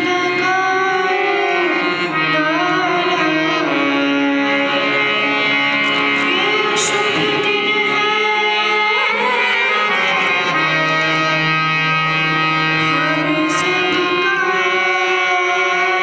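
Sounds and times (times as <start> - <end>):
girl singing: 0.0 - 4.8, 5.9 - 11.4, 12.8 - 16.0
harmonium chords: 0.0 - 16.0
tabla: 0.0 - 16.0.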